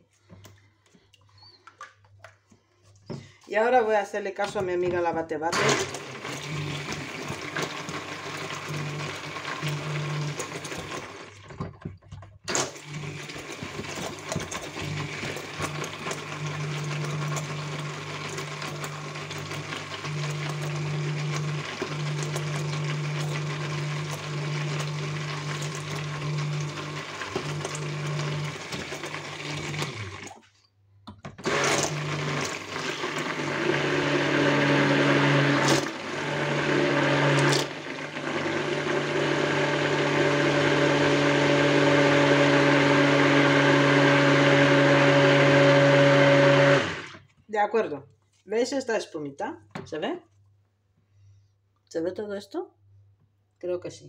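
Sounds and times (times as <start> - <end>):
stick blender motor humming: 5.5 - 11.7, 12.5 - 30.4, 31.4 - 47.2.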